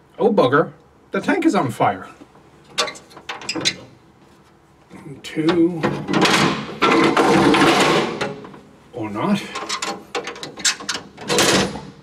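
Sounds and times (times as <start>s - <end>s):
metal hatch rattling and scraping: 5.5s - 8.6s.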